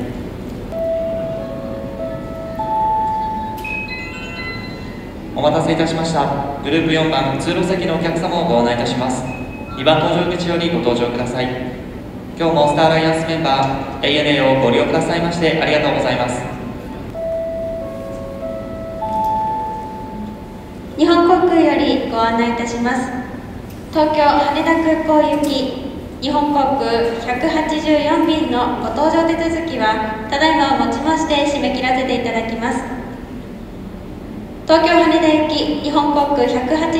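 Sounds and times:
public address chime: 0.7s - 11.4s, 12.3s - 22.8s
rising bell-like chime: 0.8s - 5.4s, 9.3s - 10.3s.

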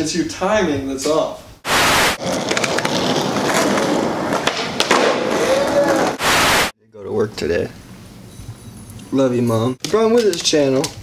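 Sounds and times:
tv static hiss: 1.6s - 2.2s, 6.2s - 6.7s
skateboard wheels rolling on asphalt: 2.2s - 6.2s.

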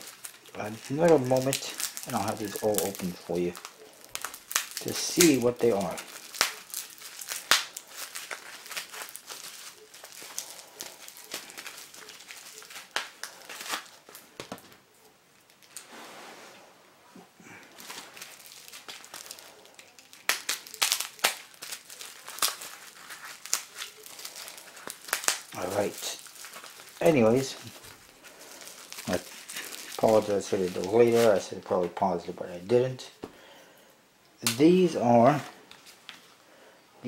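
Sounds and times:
packing tape tearing: 0.0s - 14.8s, 17.7s - 31.6s
bubble wrap crinkling: 0.0s - 16.4s, 17.4s - 33.4s, 34.4s - 36.4s.

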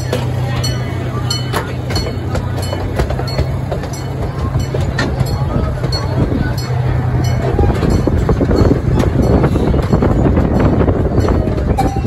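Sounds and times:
small train engine drone: 0.0s - 12.0s
train wheels clicking and knocking: 0.0s - 12.0s.

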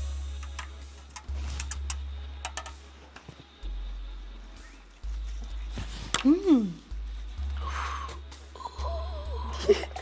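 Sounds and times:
music with deep bass notes: 0.0s - 10.0s.

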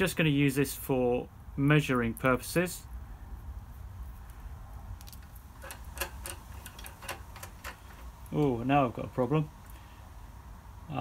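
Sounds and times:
small metal parts clicking: 5.0s - 8.5s.

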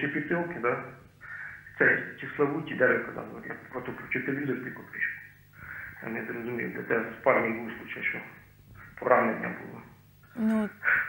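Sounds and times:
man speaking over a telephone: 0.0s - 8.4s, 9.0s - 9.8s.

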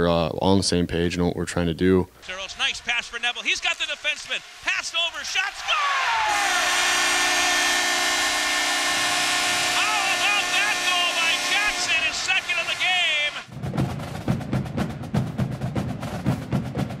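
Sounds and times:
crowd cheering and whooping: 5.1s - 8.5s
arena goal horn: 5.5s - 13.5s
drum-heavy music: 9.8s - 17.0s.

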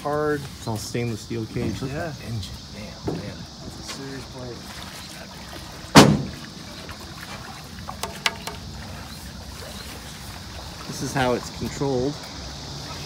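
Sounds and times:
loud thump: 5.9s - 6.4s.

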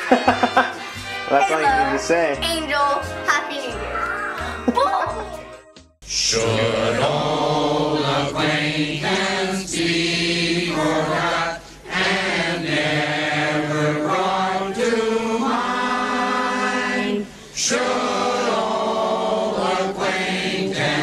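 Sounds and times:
choir singing long notes: 6.1s - 21.0s.

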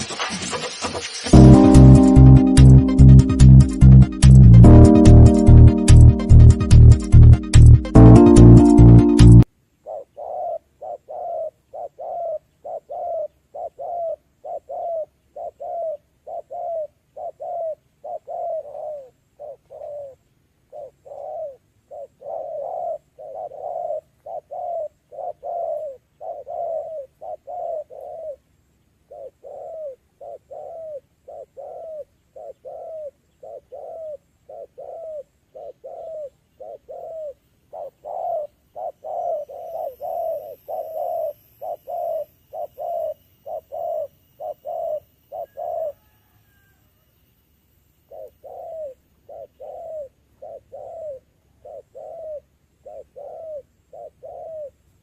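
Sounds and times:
dove cooing: 9.8s - 28.4s, 29.1s - 46.8s, 48.1s - 54.8s.

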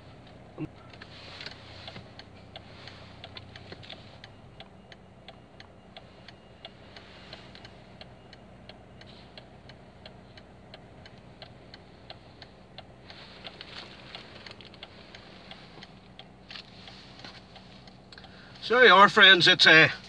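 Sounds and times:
car engine idling: 0.0s - 20.0s
turn signal indicator clicking: 0.2s - 20.0s.

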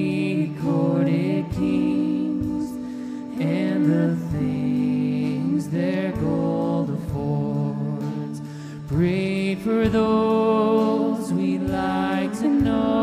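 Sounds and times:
live band with electric guitars: 0.0s - 13.0s
woman singing: 0.0s - 13.0s.

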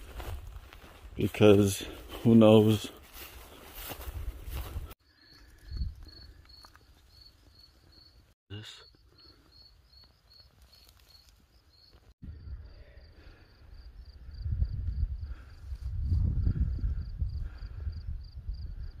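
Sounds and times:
cricket chirping: 5.0s - 19.0s.

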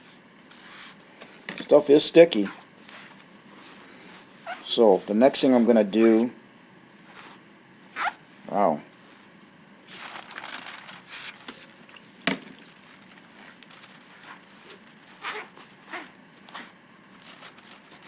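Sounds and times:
rustling and crinkling: 2.4s - 5.2s, 8.9s - 18.0s.

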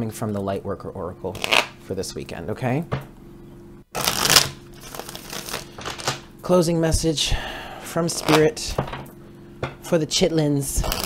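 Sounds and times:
cards shuffled by hand: 1.3s - 1.8s, 4.0s - 6.3s, 8.1s - 8.6s.

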